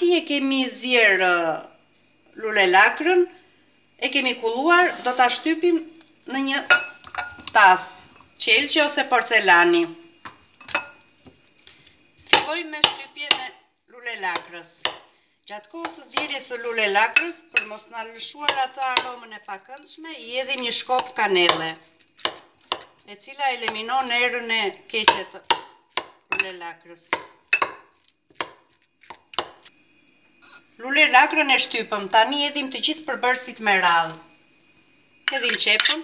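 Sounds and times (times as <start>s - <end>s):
metal spoon clinking on glass bowl: 6.7s - 7.5s, 10.6s - 11.0s, 18.5s - 19.2s, 35.3s - 36.0s
metal spoon knocking glass bowl: 6.7s - 7.5s.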